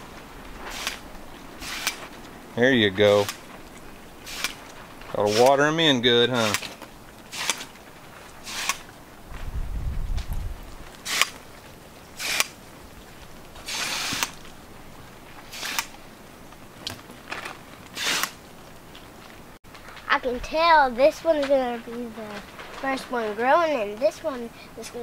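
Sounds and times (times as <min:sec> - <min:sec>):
watering wand spraying bursts: 0:00.6 - 0:02.2, 0:03.0 - 0:08.9, 0:10.9 - 0:12.8, 0:13.5 - 0:14.5, 0:15.4 - 0:16.0, 0:17.9 - 0:18.5.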